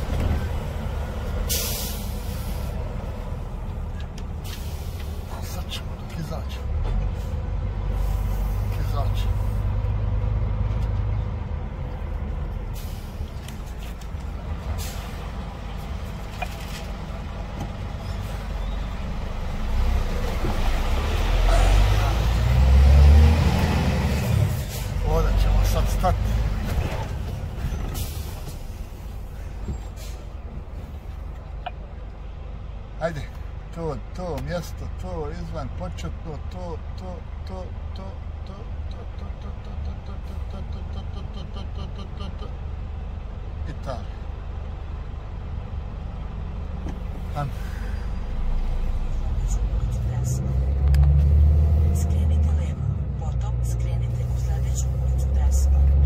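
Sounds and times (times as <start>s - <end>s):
diesel truck engine rumble: 0.0s - 56.0s
air hiss: 1.5s - 2.8s.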